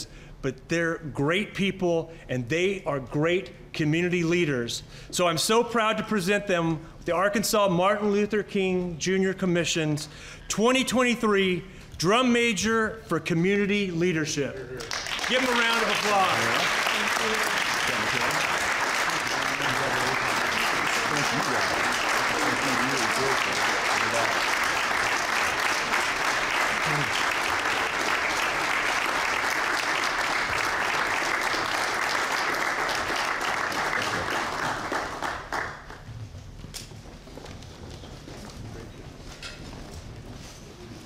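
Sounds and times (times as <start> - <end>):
audience applauding: 14.8 - 36.1.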